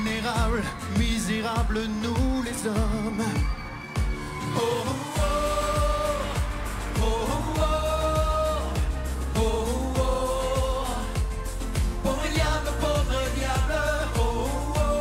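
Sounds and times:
kick drum beat: 0.0s - 4.4s, 5.2s - 15.0s
live pop band playing ballad: 0.0s - 15.0s.

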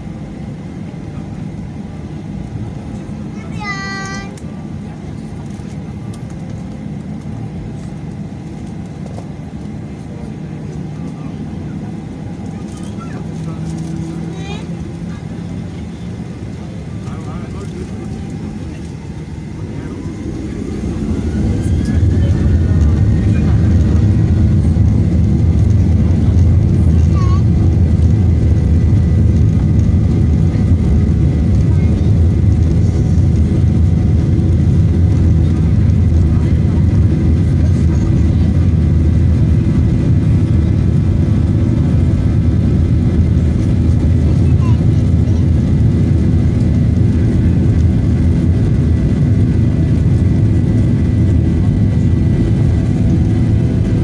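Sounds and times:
jet engines rumbling in cabin: 0.0s - 54.0s.

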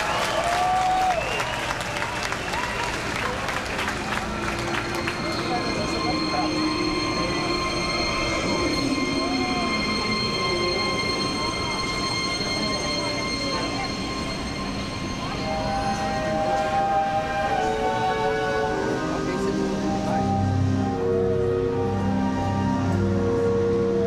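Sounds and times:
crowd murmur: 0.0s - 24.0s
music: 0.0s - 24.0s.

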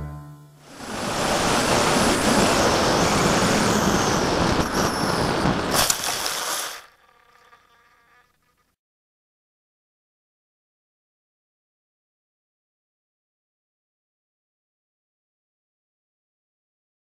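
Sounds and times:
electric motor and propeller whining: 0.6s - 8.8s
heavy wind rush: 0.7s - 5.8s
sharp crackle: 3.9s - 8.8s.

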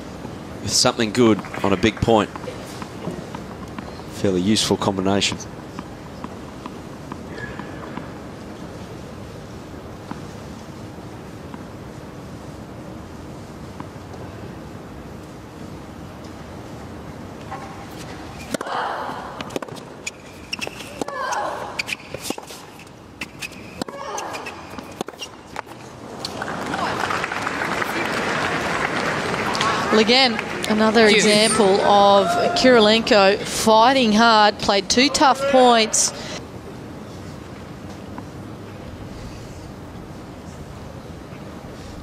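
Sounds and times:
arena background noise: 0.0s - 42.0s
tennis ball bouncing on hard court: 19.4s - 26.4s
crowd applause: 26.3s - 31.1s.

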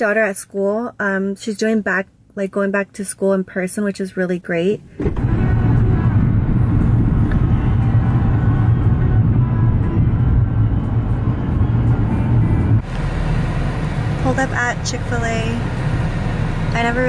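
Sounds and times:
car cabin rumble: 5.0s - 17.0s.

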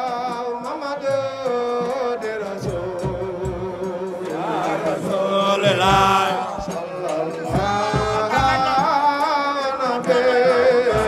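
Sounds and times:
man singing chant into microphone: 0.0s - 11.0s
other voices singing: 0.0s - 11.0s.

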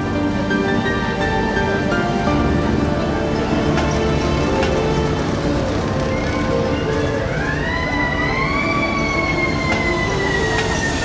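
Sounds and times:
background music: 0.0s - 11.0s
siren rising and falling: 5.9s - 11.0s.

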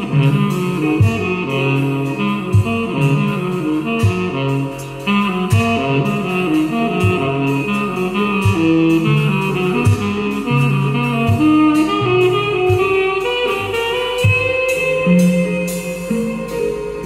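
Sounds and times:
saxophone playing: 0.0s - 17.0s.

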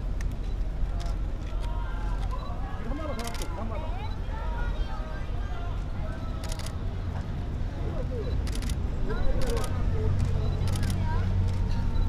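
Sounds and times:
camera shutters clicking: 3.1s - 3.5s, 9.4s - 11.0s.

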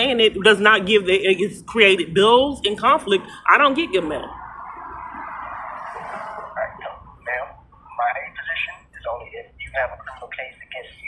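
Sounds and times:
person speaking over phone speaker: 6.1s - 11.0s.

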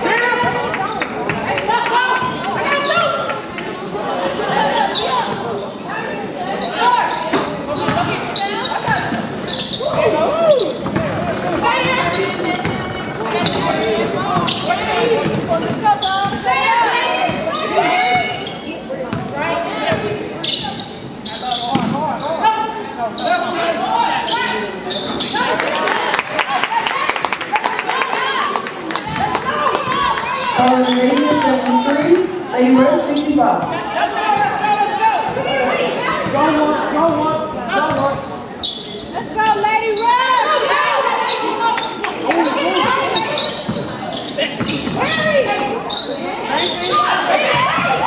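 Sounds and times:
people shouting and chatting: 0.0s - 48.0s.

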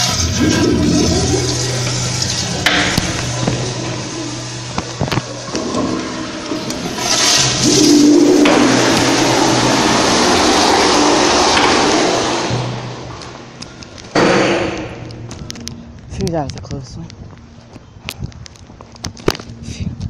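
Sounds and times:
toilet flushing: 0.0s - 15.1s.

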